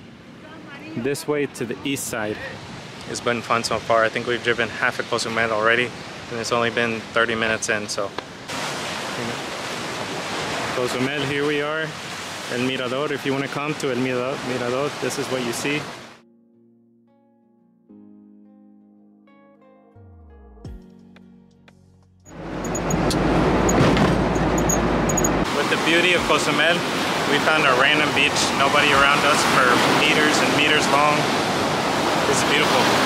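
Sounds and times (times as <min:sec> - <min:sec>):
ocean surf: 0:00.0 - 0:16.2, 0:25.4 - 0:33.0
wind: 0:00.0 - 0:16.2, 0:22.3 - 0:33.0
quiet music: 0:16.2 - 0:23.0
road and wind noise inside car: 0:22.3 - 0:25.5.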